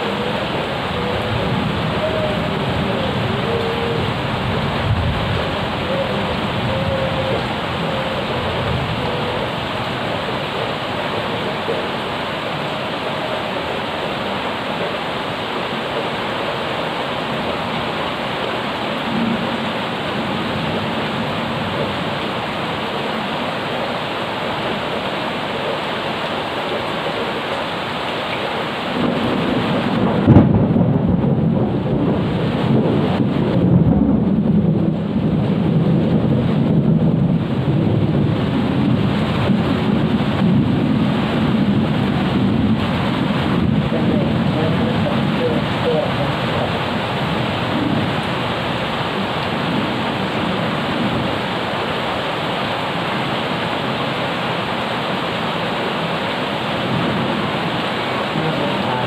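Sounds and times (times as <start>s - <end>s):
thunder clap and rumble: 0.0s - 10.9s, 28.9s - 51.9s
rain on paving: 0.0s - 59.0s.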